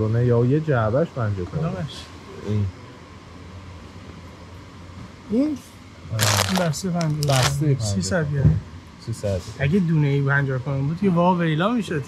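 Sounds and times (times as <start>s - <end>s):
plastic snack bag crinkling: 6.2s - 7.6s.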